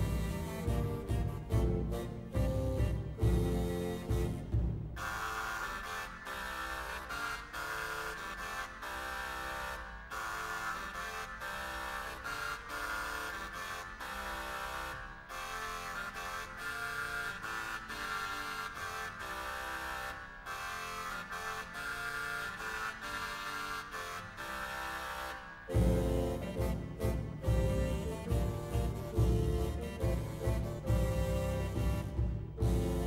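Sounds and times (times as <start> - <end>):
early music wind consort: 0.0 - 33.0.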